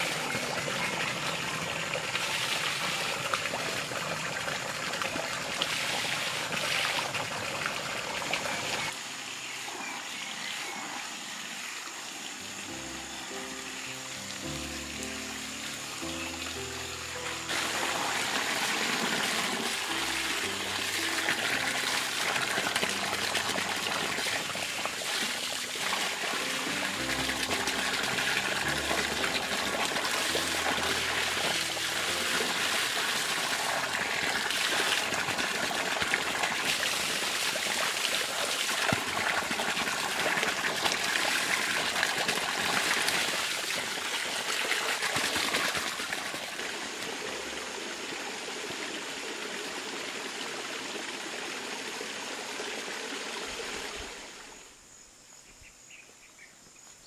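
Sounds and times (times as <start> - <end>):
water splashing from pipe spout: 0.0 - 9.0, 17.5 - 53.9
soft background music: 12.4 - 37.8, 46.5 - 48.8.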